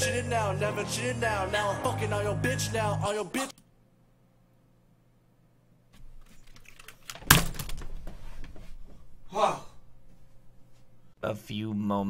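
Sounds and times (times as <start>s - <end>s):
clicks and knocks of chair: 6.0s - 9.0s.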